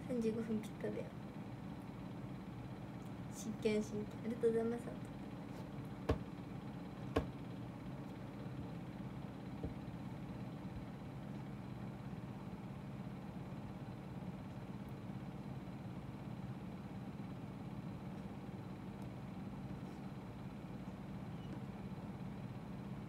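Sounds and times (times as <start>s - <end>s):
low room hum: 0.0s - 23.0s.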